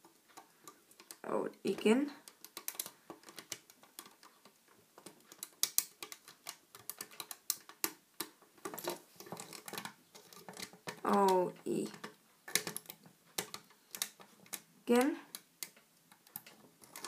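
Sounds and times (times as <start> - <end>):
crochet hook clicking on pegs: 0.0 - 8.4, 9.3 - 17.0.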